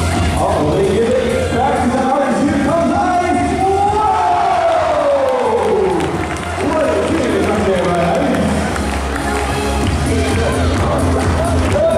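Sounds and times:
crowd cheering and shouting: 2.6s - 11.9s.

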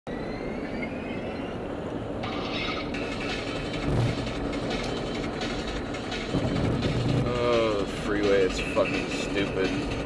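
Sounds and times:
car road and engine noise: 0.1s - 10.0s
faint whine: 0.1s - 10.0s.

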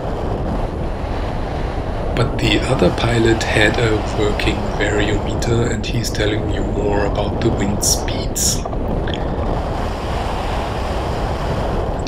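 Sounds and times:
wind rushing on microphone: 0.0s - 12.0s.

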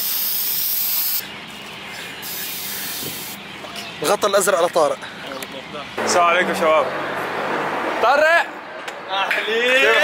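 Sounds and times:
aerosol spray can hissing: 0.0s - 1.2s, 2.2s - 3.4s.

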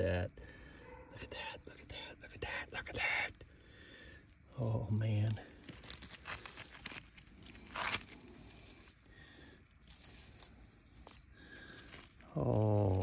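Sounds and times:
scraping and crunching of clay and rock: 4.7s - 13.0s.

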